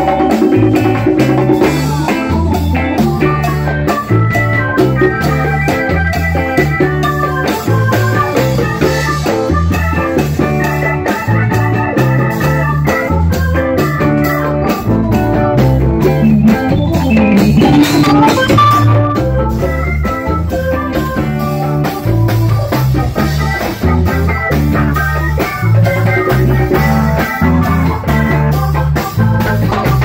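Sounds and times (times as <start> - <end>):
bass line: 0.0 - 30.0
congas: 0.0 - 30.0
drum kit: 0.0 - 30.0
electric guitar: 0.0 - 30.0
organ-toned keyboard: 0.0 - 30.0.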